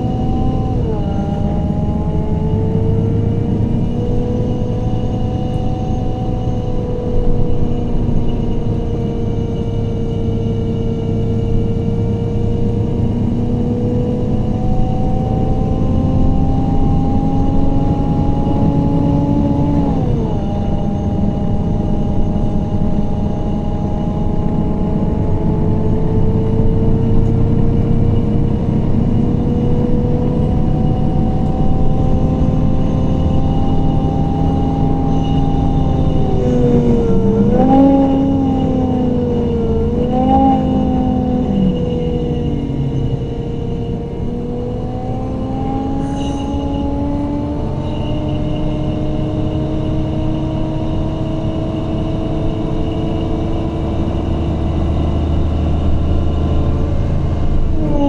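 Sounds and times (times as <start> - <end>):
bus engine and gearbox whine: 0.0 - 58.0.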